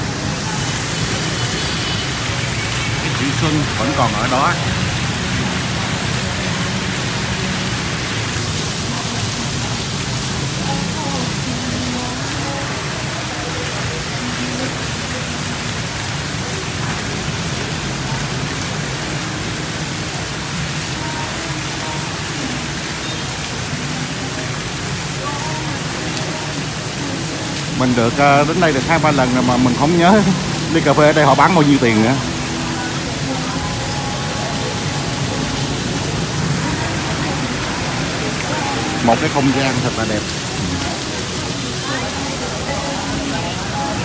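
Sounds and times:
waterfall pouring into pond: 0.0 - 44.0.

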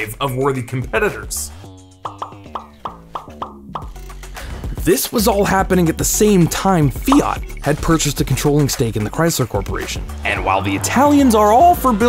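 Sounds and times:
background music: 0.0 - 12.0
cartoon pop sound effects: 2.0 - 4.0, 7.1 - 7.4.

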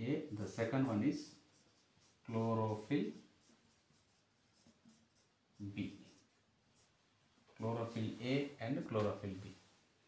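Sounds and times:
marker pen scratching on board: 0.6 - 7.1.

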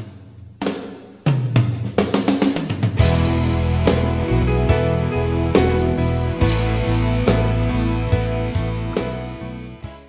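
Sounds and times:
drum fill on toms and snare: 0.0 - 7.8.

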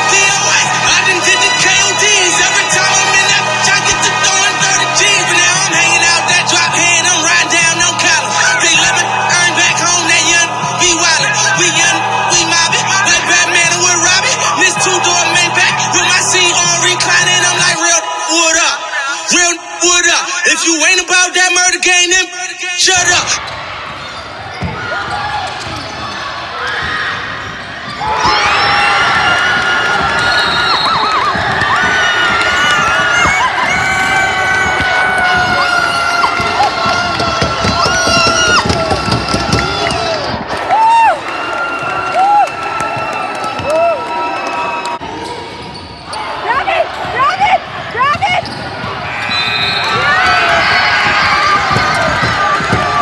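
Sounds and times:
crowd cheering and shouting: 0.0 - 53.0
sneakers squeaking on hardwood: 23.4 - 40.0, 45.2 - 53.0
basketball bouncing: 23.4 - 40.5, 46.9 - 53.0
shoes squeaking on gym floor: 23.9 - 28.0, 48.1 - 53.0.

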